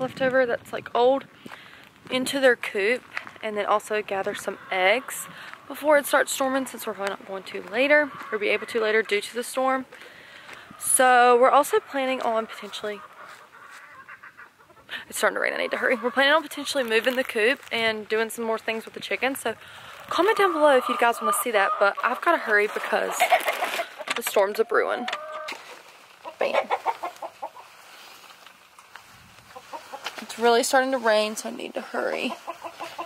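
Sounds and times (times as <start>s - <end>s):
chickens clucking: 2.2s - 28.8s, 29.4s - 33.0s.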